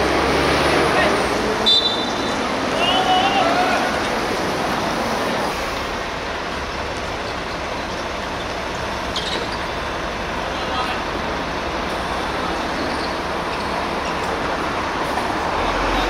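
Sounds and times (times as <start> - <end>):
city traffic noise: 0.0 - 16.0.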